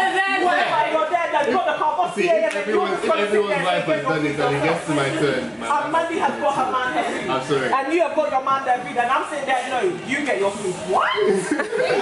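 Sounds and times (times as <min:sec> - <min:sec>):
people talking: 0:07.8 - 0:12.0
chuckling laughter: 0:11.3 - 0:12.0.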